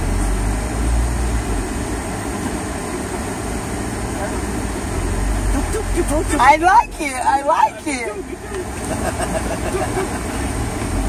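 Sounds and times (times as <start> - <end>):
engine and road rumble: 0.0 - 11.0.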